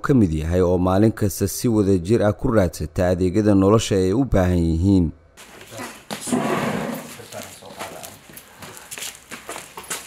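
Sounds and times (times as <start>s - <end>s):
knee pads scuffing on floor: 5.4s - 10.0s.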